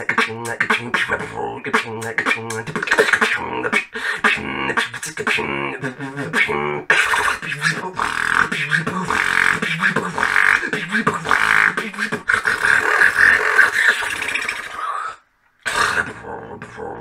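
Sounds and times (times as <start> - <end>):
person beatboxing: 0.0 - 17.0.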